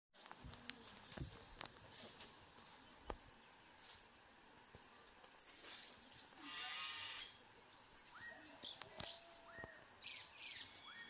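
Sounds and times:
faint high whine: 0:02.0 - 0:11.0
animal call: 0:06.4 - 0:07.4.

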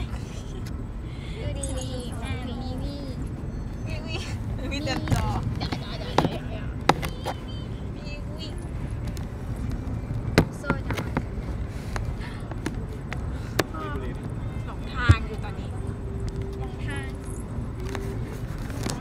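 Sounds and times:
girls murmuring and giggling: 0:00.0 - 0:07.5
car interior rumble: 0:00.0 - 0:19.0.

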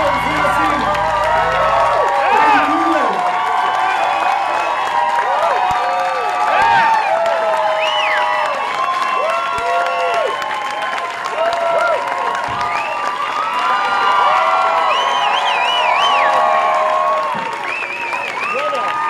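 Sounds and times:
audience applauding: 0:00.0 - 0:19.0
crowd cheering and whooping: 0:00.0 - 0:19.0.

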